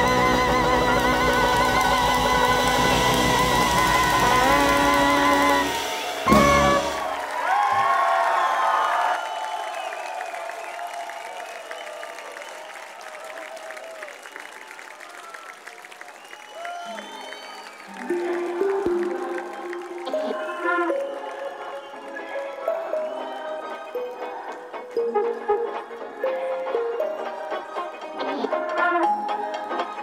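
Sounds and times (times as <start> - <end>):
brass band chord: 0.0 - 7.3
held low brass notes: 0.0 - 7.4
whistling: 0.0 - 13.2, 13.8 - 18.4, 20.2 - 24.1
audience applauding and cheering: 0.0 - 30.0.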